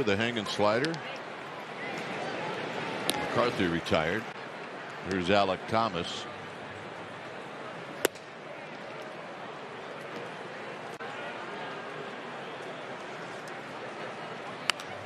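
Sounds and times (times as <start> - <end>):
crowd murmur: 0.0 - 15.0.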